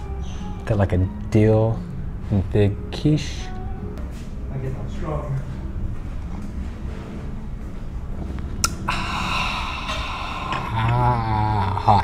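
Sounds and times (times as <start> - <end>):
man breathing out hard: 8.9 - 10.8
man groaning ahh: 8.9 - 11.8.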